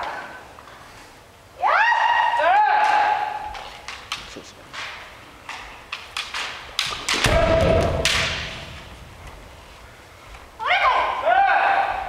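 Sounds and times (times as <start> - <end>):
bamboo swords clacking: 2.8 - 9.5.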